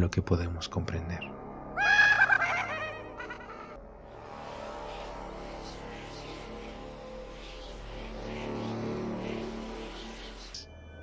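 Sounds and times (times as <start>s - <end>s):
faint background music: 0.0s - 11.0s
high quavering voice-like cry: 1.8s - 3.8s.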